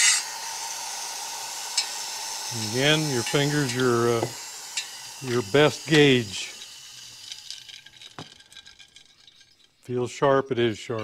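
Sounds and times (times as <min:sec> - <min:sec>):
man talking: 0:02.5 - 0:04.4, 0:05.2 - 0:06.6, 0:09.9 - 0:11.0.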